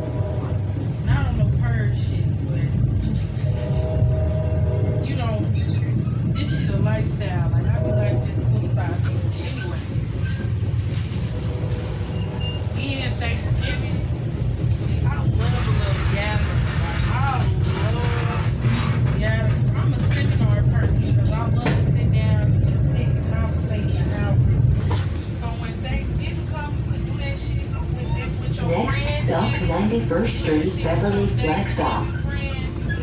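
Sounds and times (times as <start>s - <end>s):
indistinct chatter: 0.0s - 33.0s
train rumbling: 0.0s - 33.0s.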